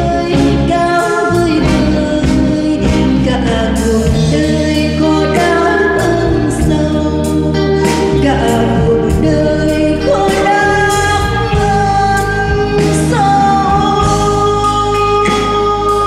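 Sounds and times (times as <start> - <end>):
live band: 0.0 - 16.0
woman singing slow song: 0.0 - 16.0.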